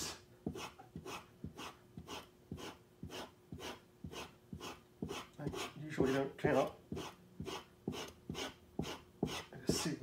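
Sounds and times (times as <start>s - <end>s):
chisel rubbing on leather strop: 0.5s - 9.9s.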